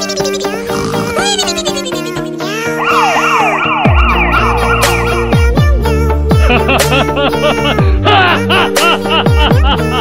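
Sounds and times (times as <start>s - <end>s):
electronic music with deep bass: 0.0s - 10.0s
police siren yelp: 2.7s - 5.3s.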